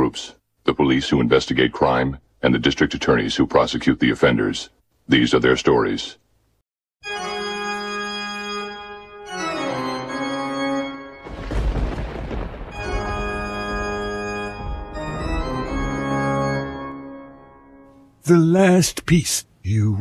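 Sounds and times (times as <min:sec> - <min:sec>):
organ playing slow chords: 0:07.0 - 0:11.3, 0:12.7 - 0:18.5.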